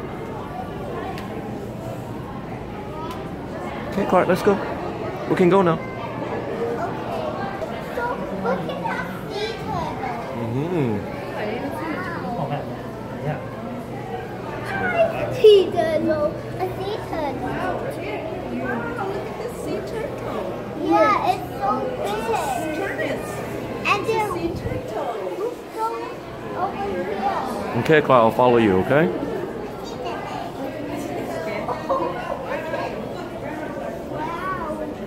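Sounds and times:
background chatter of voices: 0:00.0 - 0:35.0
children's high-pitched voices: 0:06.0 - 0:10.4, 0:14.5 - 0:17.8, 0:20.8 - 0:27.4, 0:34.1 - 0:35.0.

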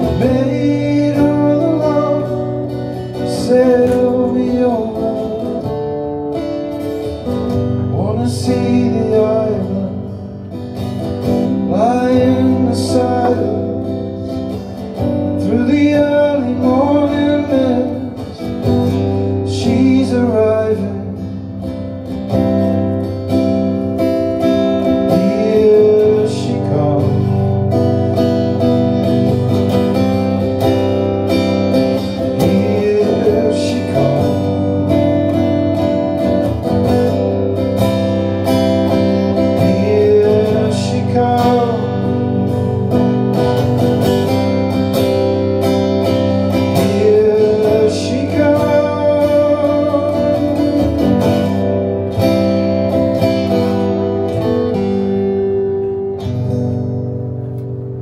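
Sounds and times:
acoustic guitar strummed and picked: 0:00.0 - 0:58.0.

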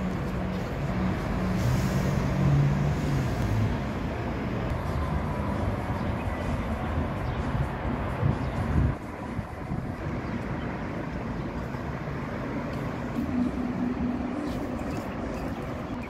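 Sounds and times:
outdoor rumble and hiss: 0:00.0 - 0:16.0.

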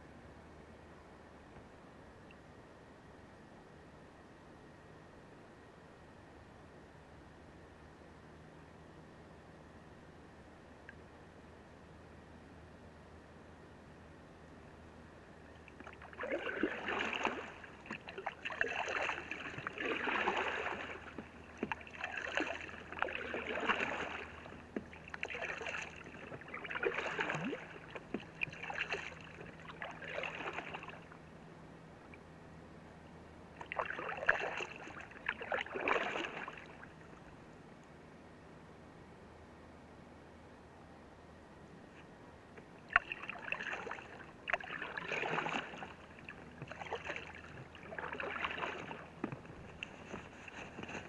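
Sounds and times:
paddle strokes in water: 0:15.4 - 0:31.3, 0:33.5 - 0:37.3, 0:41.9 - 0:51.0
water trickling off paddle: 0:15.6 - 0:31.2, 0:33.6 - 0:37.1, 0:42.8 - 0:51.0.

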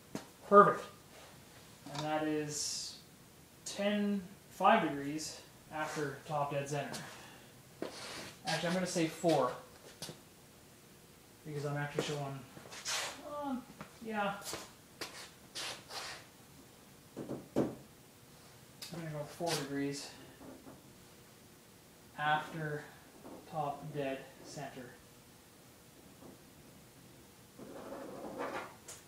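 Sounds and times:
soft rustling noises: 0:01.0 - 0:02.0, 0:06.8 - 0:10.2, 0:11.8 - 0:16.3, 0:18.2 - 0:20.6.

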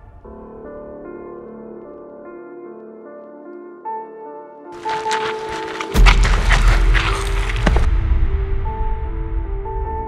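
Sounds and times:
film score: 0:00.0 - 0:10.0.

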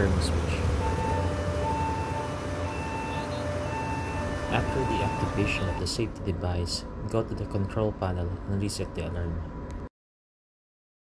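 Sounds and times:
air compressor humming: 0:00.0 - 0:05.9
two-tone alarm: 0:00.8 - 0:06.0.

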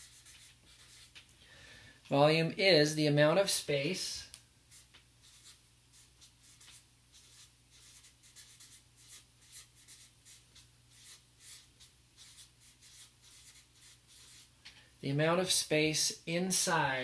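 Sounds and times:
marker scratching on paper: 0:00.0 - 0:01.3, 0:04.7 - 0:14.6.

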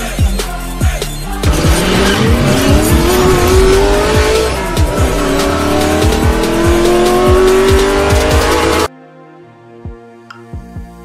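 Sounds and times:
fast electronic beat: 0:01.0 - 0:08.9
race car engine accelerating: 0:01.3 - 0:08.9.

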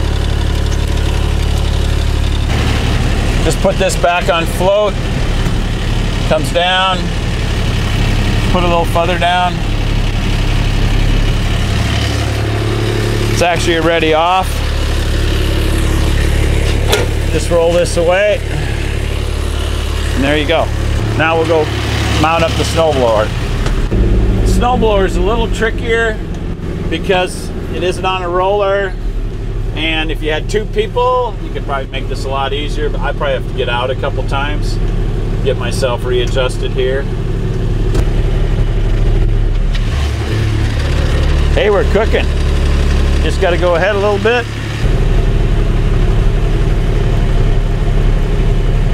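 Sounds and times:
diesel engine idling: 0:00.0 - 0:48.9.

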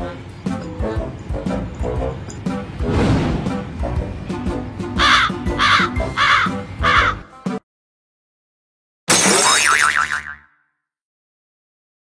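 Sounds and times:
cartoon boing sound effect: 0:09.1 - 0:10.7.

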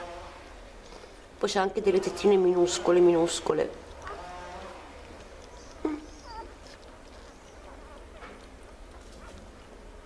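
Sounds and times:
puppies squeaking: 0:03.9 - 0:09.4.

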